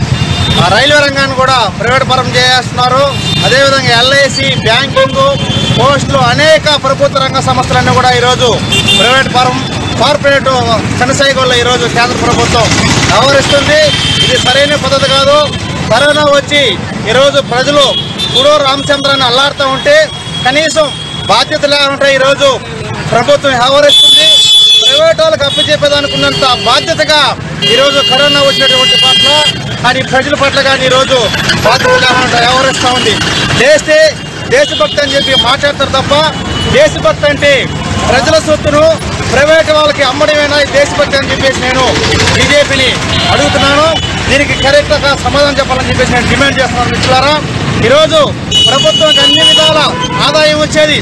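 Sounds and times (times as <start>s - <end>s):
road traffic: 0.0s - 51.0s
man speaking: 0.6s - 51.0s.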